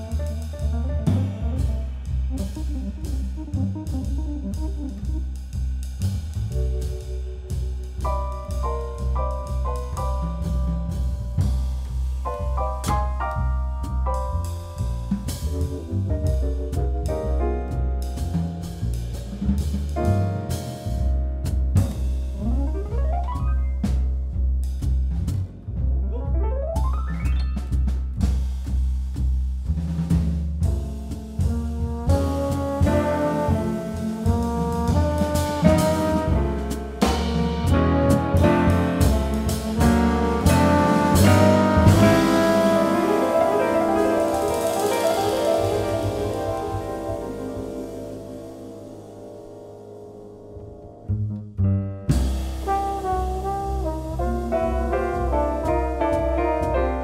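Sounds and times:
trombone melody: 0.0s - 5.2s, 31.4s - 49.6s, 52.6s - 57.0s
drum kit strikes: 0.0s - 49.9s, 52.0s - 57.0s
double bass notes: 0.0s - 57.0s
jazz band playing: 0.0s - 57.0s
piano: 0.0s - 57.0s
sharp drum hit: 30.1s - 49.2s
held chord tones: 41.5s - 51.0s.

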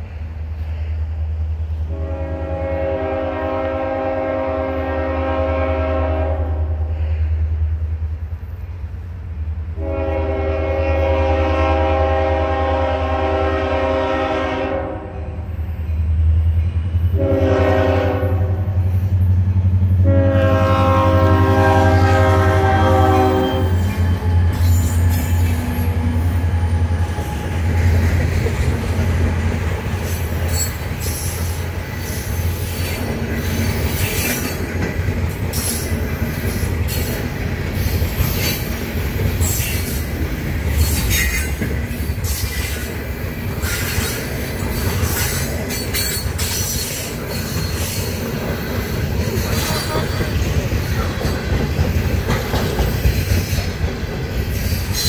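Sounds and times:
locomotive horn blast: 1.9s - 6.9s, 9.8s - 15.4s, 17.1s - 18.8s, 20.0s - 26.5s
train wheels clicking: 22.3s - 55.0s.

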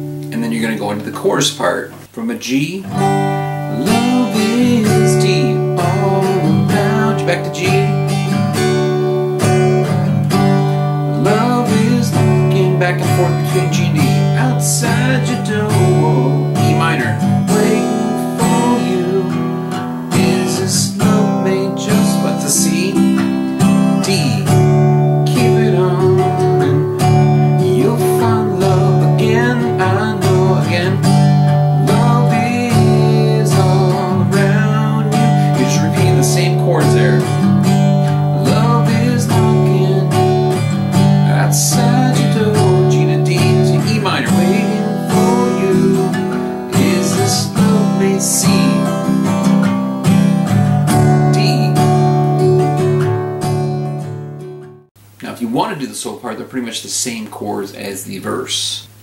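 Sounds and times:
acoustic guitar strumming: 0.0s - 55.9s.

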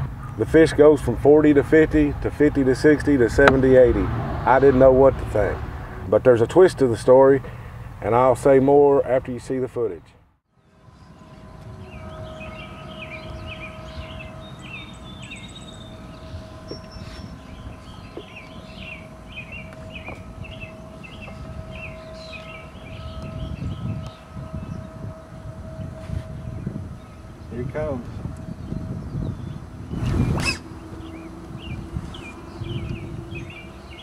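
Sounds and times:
wind rumbling on microphone: 0.0s - 6.6s, 10.8s - 34.0s
distant hum: 0.0s - 9.4s, 10.6s - 34.0s
bird chirping: 10.6s - 34.0s.

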